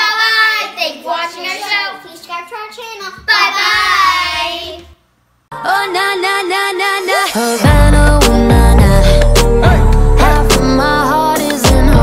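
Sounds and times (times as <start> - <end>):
girls singing together: 5.5 - 9.5
music: 5.5 - 12.0.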